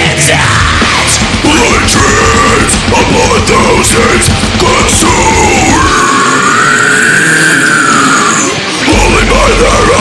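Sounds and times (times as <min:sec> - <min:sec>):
deathcore music with growled vocals: 0:00.0 - 0:10.0.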